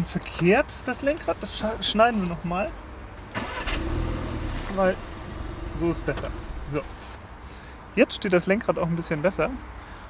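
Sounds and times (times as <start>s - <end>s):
car engine starting and idling: 3.3s - 7.2s.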